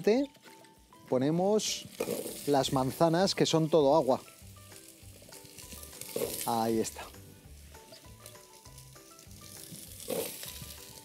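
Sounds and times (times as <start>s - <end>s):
butter sizzling: 0.0s - 11.0s.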